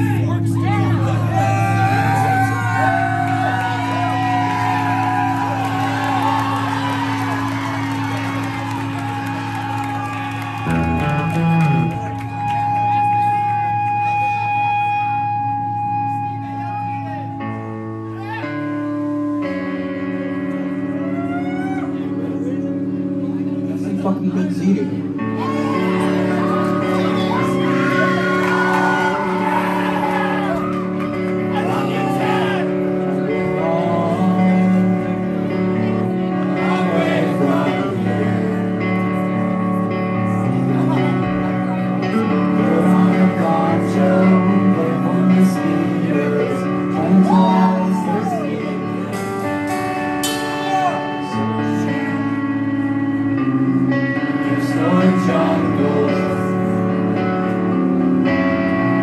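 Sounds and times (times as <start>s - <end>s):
live band playing droning music: 0.0s - 23.9s, 24.6s - 59.0s
person shouting or whooping: 47.2s - 48.5s.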